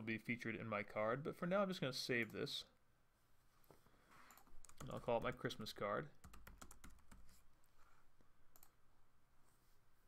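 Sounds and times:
faint typing on a keyboard: 0:04.1 - 0:07.8, 0:08.5 - 0:08.9.

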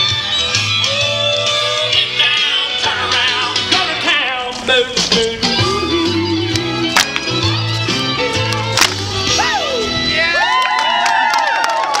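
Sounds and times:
group cheering and whooping: 0:00.8 - 0:02.3, 0:09.3 - 0:12.0.

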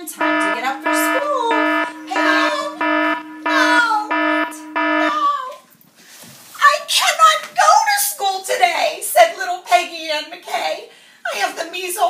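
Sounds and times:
electronic alarm beeping: 0:00.0 - 0:05.4.

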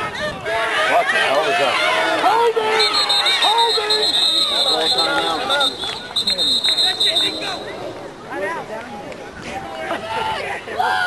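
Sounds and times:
crowd shouting and cheering: 0:00.0 - 0:11.0
warbling whistle: 0:02.7 - 0:07.9.

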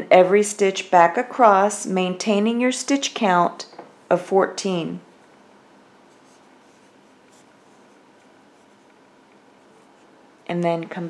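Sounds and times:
low room hiss: 0:00.0 - 0:11.0
yarn scratching on crochet hook: 0:06.0 - 0:10.5.

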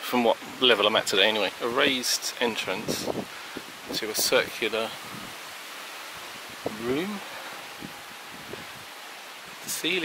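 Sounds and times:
man speaking: 0:00.0 - 0:03.2, 0:03.9 - 0:05.0, 0:06.7 - 0:07.3, 0:09.6 - 0:10.0
outdoor hiss: 0:00.0 - 0:10.0.

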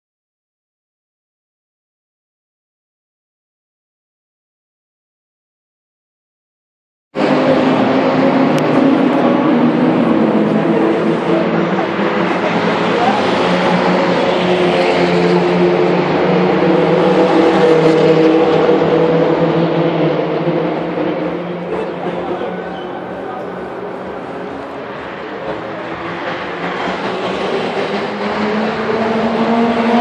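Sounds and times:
car engines running: 0:07.2 - 0:30.0.

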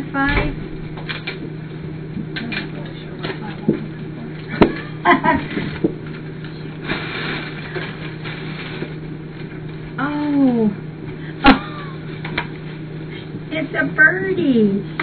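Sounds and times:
steady low hum: 0:00.0 - 0:15.0
plastic bag rustling: 0:04.4 - 0:10.5.

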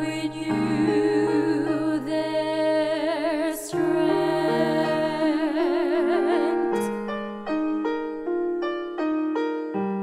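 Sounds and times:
woman singing with vibrato: 0:00.0 - 0:07.1.

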